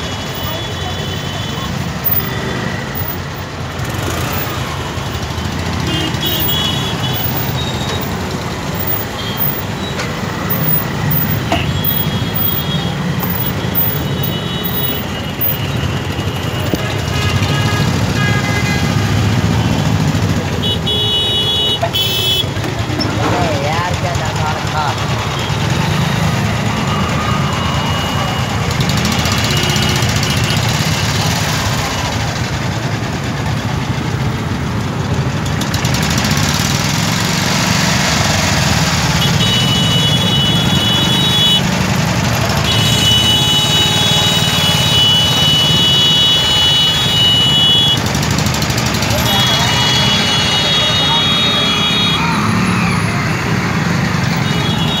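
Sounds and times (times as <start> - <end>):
idling engines rumble: 0.0 - 55.0
voices: 20.1 - 32.5, 48.6 - 55.0.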